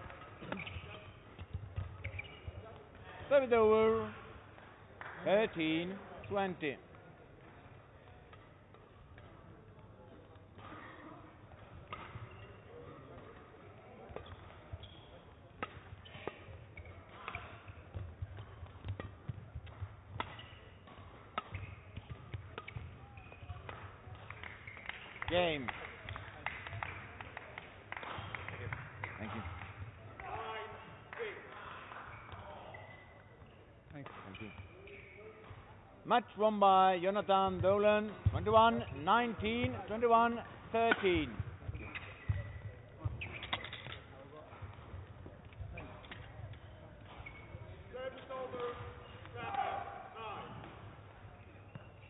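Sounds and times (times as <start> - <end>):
racket hitting shuttlecock: 0.0 - 3.0, 11.6 - 12.5, 15.5 - 26.2, 40.4 - 47.4
footsteps and shoe squeaks: 0.4 - 2.9, 12.0 - 13.0, 14.2 - 23.8, 32.1 - 35.7, 41.0 - 49.4, 51.1 - 52.0.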